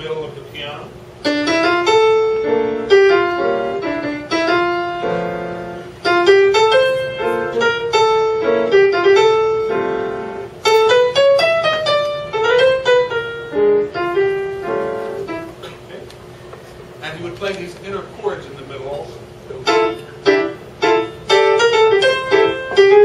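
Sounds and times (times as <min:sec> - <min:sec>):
grand piano playing jazz melody: 0:00.0 - 0:15.7, 0:19.4 - 0:23.0.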